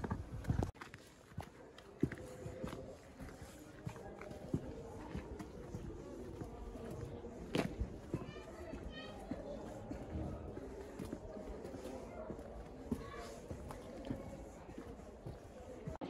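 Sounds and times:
footsteps: 0.0 - 16.0.

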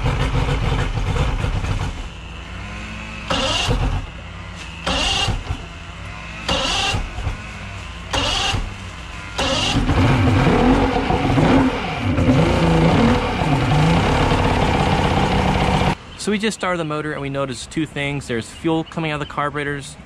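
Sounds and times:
outboard engine revving unevenly: 0.0 - 16.0
outboard engine cranking: 3.3 - 4.1, 4.8 - 5.7, 6.5 - 7.4, 8.1 - 16.0.

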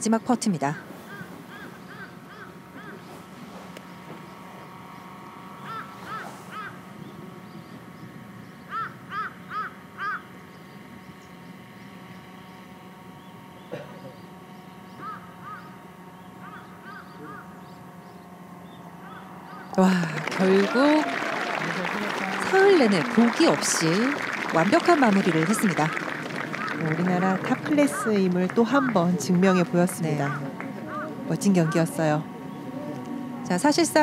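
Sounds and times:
low outdoor hum: 0.0 - 34.0
bird calling: 0.6 - 34.0.

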